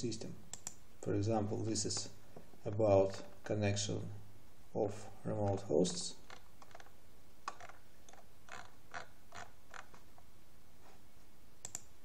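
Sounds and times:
computer mouse clicks: 0.5 - 0.8, 11.6 - 11.9.

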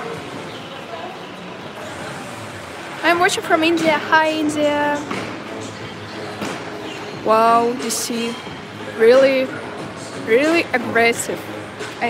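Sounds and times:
indoor hall background noise: 0.0 - 12.0.

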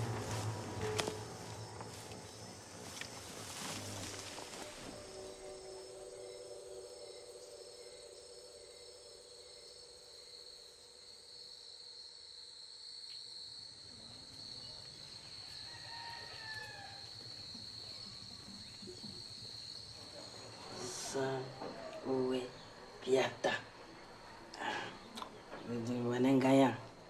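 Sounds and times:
crickets trilling: 0.0 - 27.0.

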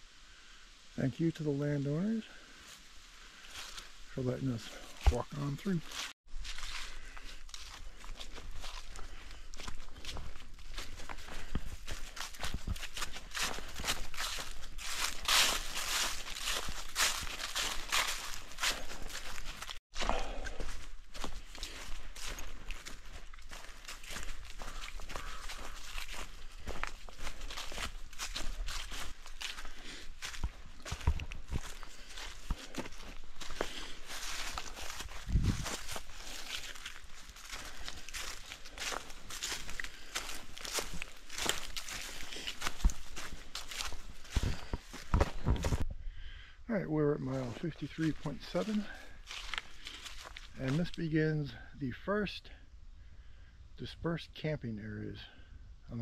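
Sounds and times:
footsteps crunching on leaf litter: 1.0 - 45.8, 47.2 - 52.1.

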